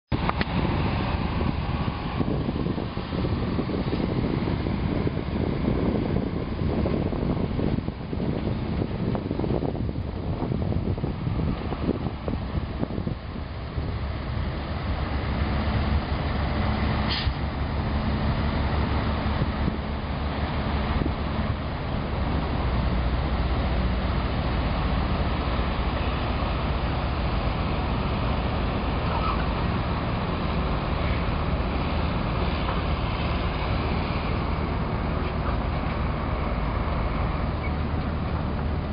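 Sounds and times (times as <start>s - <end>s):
road traffic rumble: 0.1s - 38.9s.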